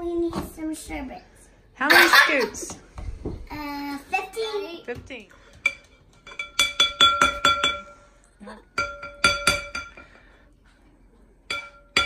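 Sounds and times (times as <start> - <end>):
metal spoon clinking on glass bowl: 5.7 - 8.0, 8.8 - 10.0.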